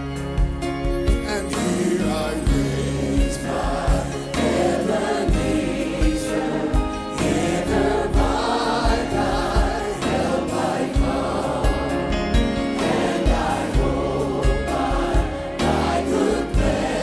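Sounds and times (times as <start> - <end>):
gospel choir singing: 1.2 - 17.0
low beat thumps: 2.5 - 17.0.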